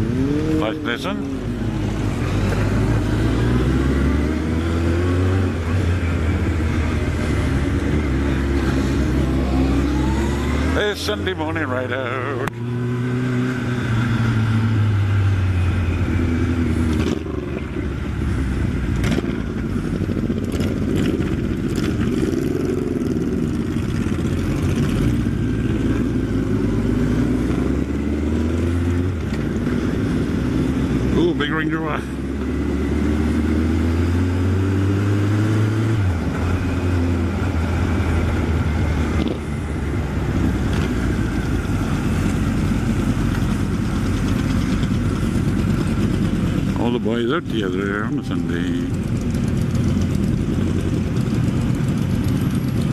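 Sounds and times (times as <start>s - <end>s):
motorcycle engine shifting gears: 0.0s - 11.2s, 12.2s - 52.9s.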